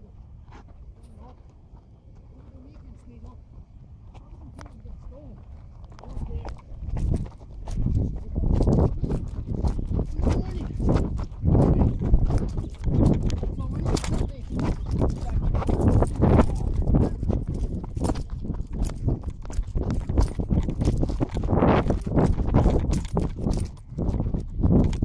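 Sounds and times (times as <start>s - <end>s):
irregular thuds: 6.3s - 25.0s.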